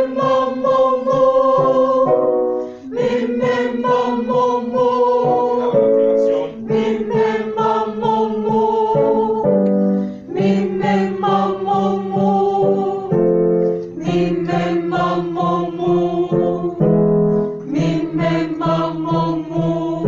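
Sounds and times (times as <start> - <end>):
women singing vocal warm-up: 0.0 - 2.2, 2.8 - 16.9, 17.6 - 20.0
keyboard: 0.0 - 20.0.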